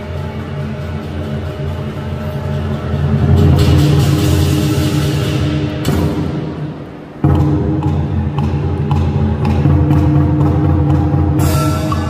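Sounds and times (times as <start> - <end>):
cymbals crashing: 0.0 - 8.2, 11.3 - 12.0
lion dance drumming: 0.0 - 12.0
gong: 7.3 - 12.0.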